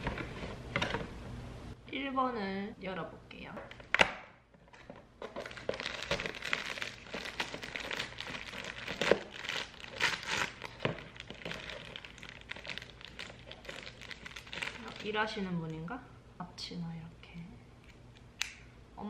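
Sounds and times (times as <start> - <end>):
plastic bag crinkling: 5.2 - 15.8.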